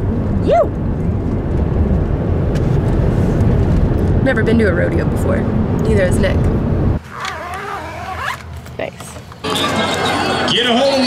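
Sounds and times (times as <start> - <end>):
zipper rasping: 7.0 - 8.7
crowd voices: 8.9 - 11.0.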